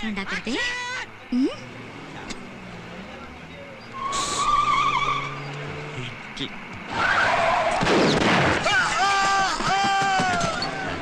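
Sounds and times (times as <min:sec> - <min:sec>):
engine noise: 0:00.0 - 0:11.0
tyres squealing in a skid: 0:02.9 - 0:06.0, 0:06.8 - 0:11.0.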